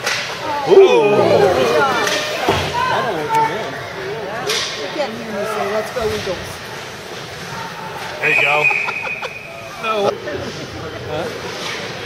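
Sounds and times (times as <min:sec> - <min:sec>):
spectators shouting: 0:00.4 - 0:03.8.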